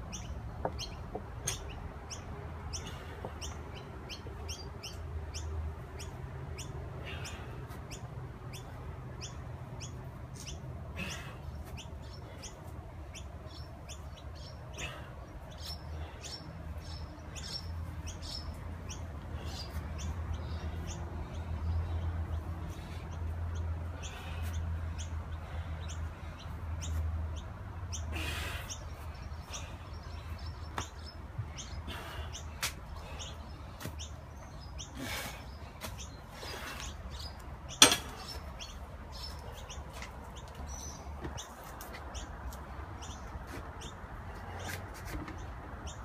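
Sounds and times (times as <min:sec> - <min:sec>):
small birds chirping: 0:00.0 - 0:46.0.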